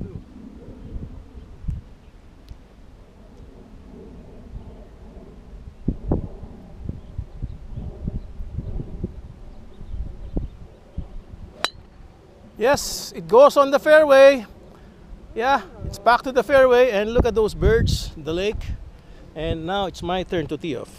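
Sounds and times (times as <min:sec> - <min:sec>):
wind rumble on microphone: 0:00.0 - 0:13.1, 0:14.5 - 0:20.9.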